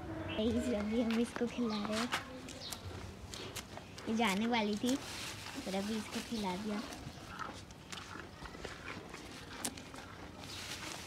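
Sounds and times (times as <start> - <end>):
cow chewing leaves: 0.7 - 11.0.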